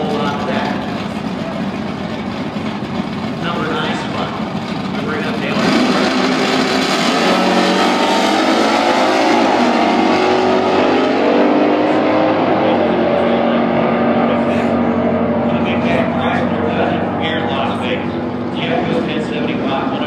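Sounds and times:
drag racing engines accelerating: 0.0s - 20.0s.

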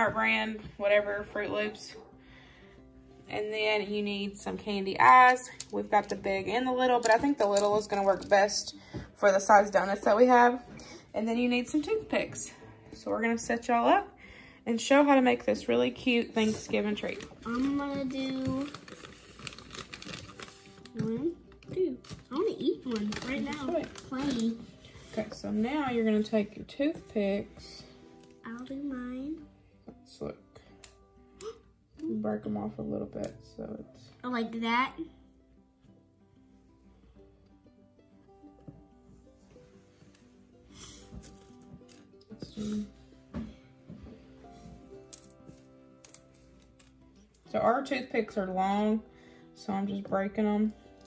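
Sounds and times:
soft background music: 0.0s - 51.0s
plastic bag crinkling: 16.9s - 21.1s, 22.0s - 24.7s
wooden toothpicks snapping: 30.8s - 32.1s, 45.1s - 47.4s.

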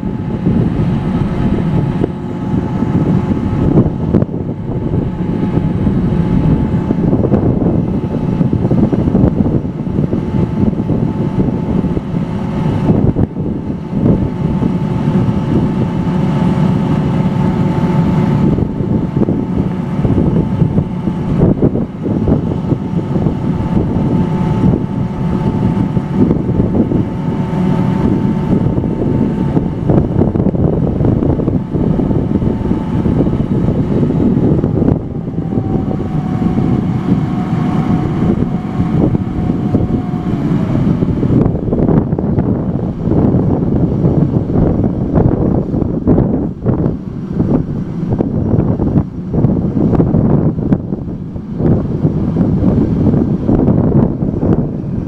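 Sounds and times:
auger machine noise: 0.0s - 44.3s
faint steady whine: 0.0s - 55.0s
wind buffeting microphone: 0.0s - 55.0s.

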